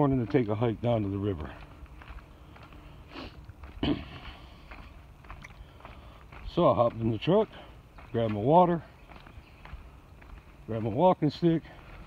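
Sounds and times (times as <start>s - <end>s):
footsteps on leafy dirt trail: 0.0s - 12.0s
man breathing: 2.2s - 3.5s, 4.2s - 6.4s.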